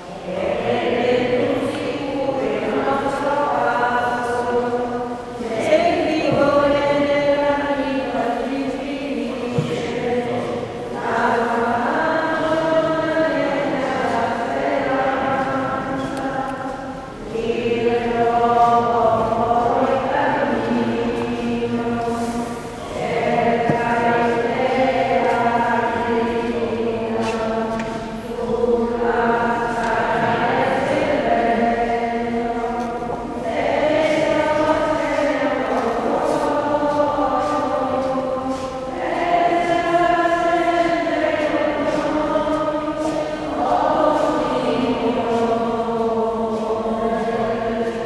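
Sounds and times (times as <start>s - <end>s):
choir singing a hymn: 0.0s - 48.0s.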